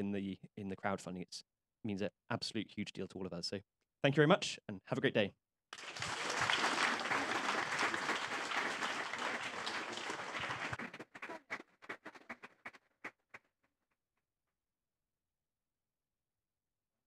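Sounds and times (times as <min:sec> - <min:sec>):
audience applauding: 0:05.8 - 0:12.8.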